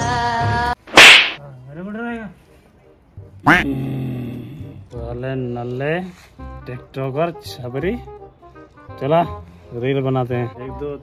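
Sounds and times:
sharp swishing sound effect: 0:00.9 - 0:01.4
music with held notes: 0:04.5 - 0:11.0.

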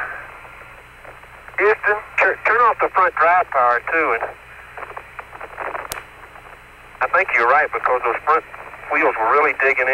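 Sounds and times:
radio hiss: 0:00.0 - 0:09.9
sharp click: 0:05.9 - 0:06.1.

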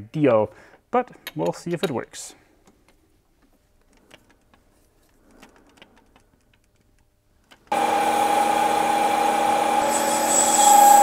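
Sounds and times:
metal parts clicking: 0:03.8 - 0:07.7.

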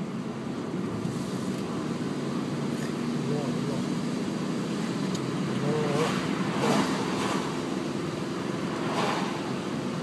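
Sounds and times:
car cabin road noise: 0:00.0 - 0:10.0.

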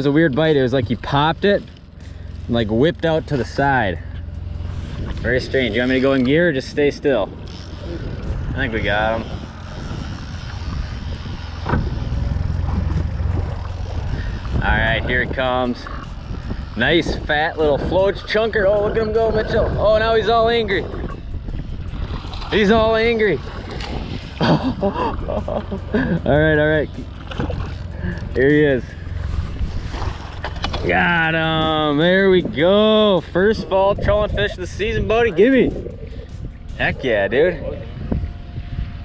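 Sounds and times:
outboard motor idling: 0:00.0 - 0:39.0
wind rumble on microphone: 0:00.0 - 0:39.0.

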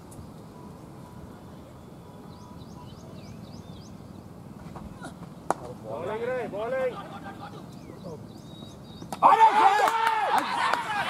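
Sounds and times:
quiet outdoor background: 0:00.0 - 0:11.0.

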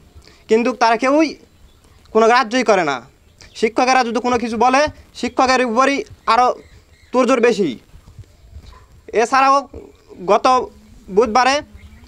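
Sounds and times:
man speaking: 0:02.1 - 0:06.6, 0:07.2 - 0:07.8, 0:09.1 - 0:11.8.

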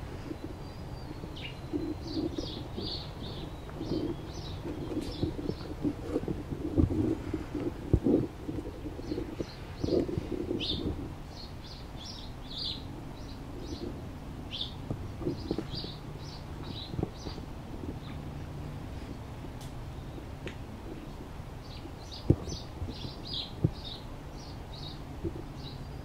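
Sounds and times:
bird cooing call: 0:00.0 - 0:18.2
low thumps: 0:01.1 - 0:11.4.

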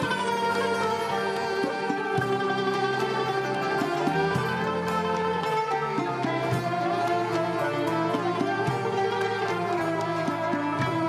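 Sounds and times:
instrumental ensemble accompaniment: 0:00.0 - 0:11.0
ney flute long notes: 0:00.0 - 0:11.0.

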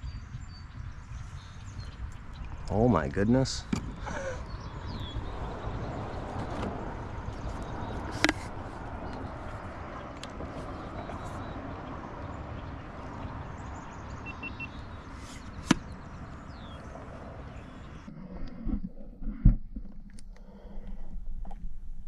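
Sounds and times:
wind on microphone: 0:00.0 - 0:19.6.

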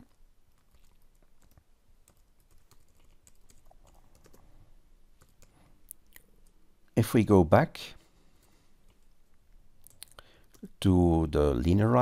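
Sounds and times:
typing on computer keyboard: 0:00.6 - 0:04.4, 0:05.2 - 0:05.5.

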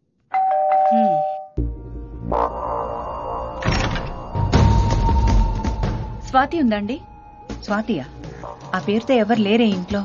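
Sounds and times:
two-tone doorbell chime: 0:00.3 - 0:01.6.

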